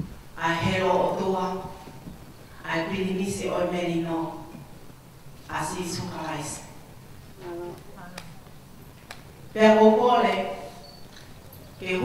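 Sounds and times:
faint voiced murmur: 7.4 - 8.4.

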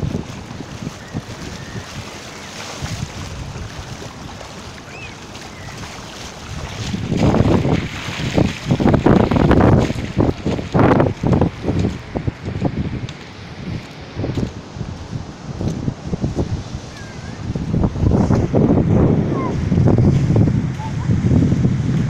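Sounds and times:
heavy surf: 0.0 - 22.0
seawater running in a channel: 0.0 - 22.0
wind buffeting microphone: 0.0 - 22.0.

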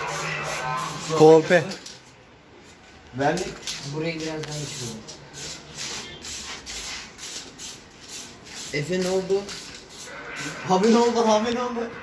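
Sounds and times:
spray paint can hissing bursts: 0.0 - 1.5, 4.1 - 11.0.

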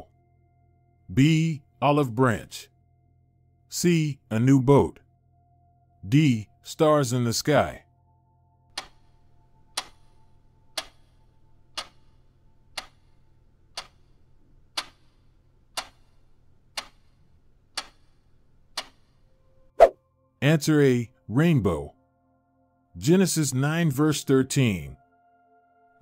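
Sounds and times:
clock ticking: 8.7 - 19.4.

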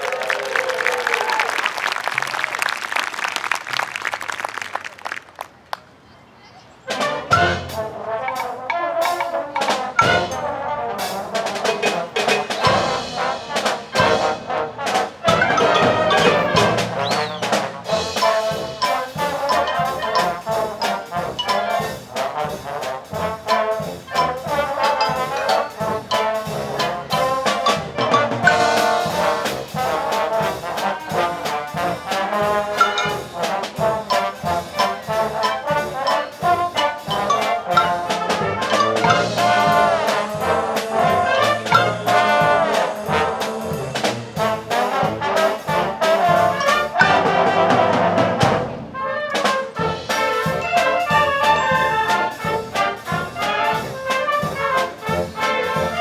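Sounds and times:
concert band playing ragtime: 1.0 - 5.7, 6.9 - 56.0
trombones carrying the tune: 6.9 - 56.0
steady percussion beat: 7.2 - 48.8, 49.7 - 56.0.

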